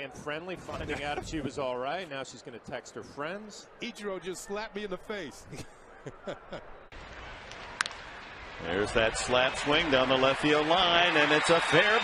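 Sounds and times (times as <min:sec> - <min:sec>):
stadium crowd murmur: 0:00.0 - 0:12.0
man laughing: 0:00.7 - 0:01.4, 0:05.4 - 0:06.8.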